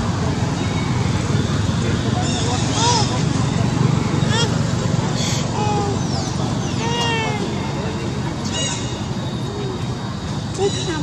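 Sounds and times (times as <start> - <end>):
baby macaque calling: 4.2 - 4.6, 5.2 - 7.8, 8.4 - 9.8.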